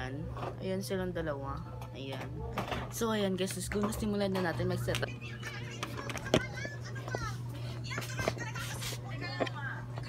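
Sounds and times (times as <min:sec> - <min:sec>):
steady low hum: 0:00.0 - 0:10.0
children's chatter: 0:05.0 - 0:09.5.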